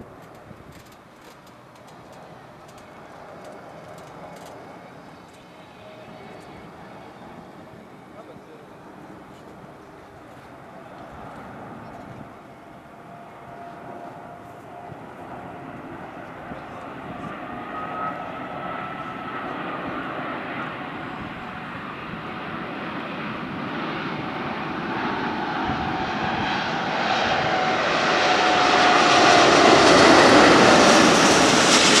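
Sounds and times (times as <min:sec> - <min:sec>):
jet engines with faint whine: 0:00.0 - 0:32.0.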